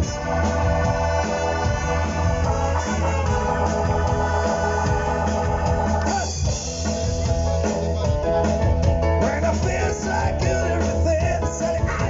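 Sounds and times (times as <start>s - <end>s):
bass: 0.0s - 12.0s
drums: 0.0s - 12.0s
electric organ: 0.0s - 12.0s.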